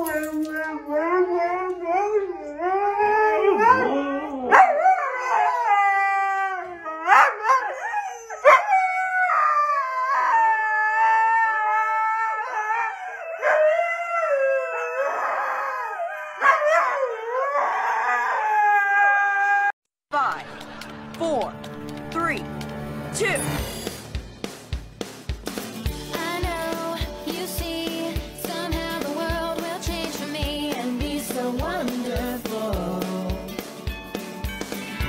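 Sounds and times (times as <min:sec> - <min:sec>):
husky howling: 0:00.1 - 0:19.7.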